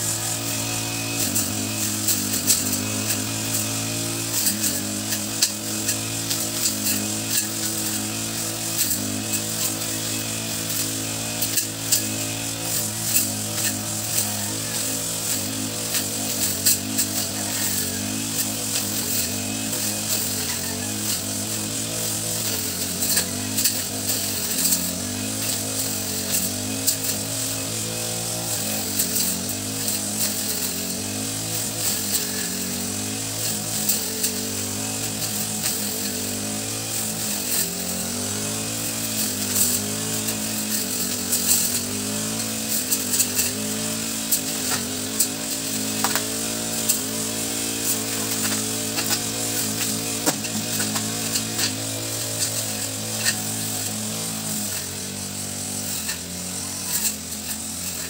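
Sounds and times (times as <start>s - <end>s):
brush cutter engine running: 0.0s - 58.0s.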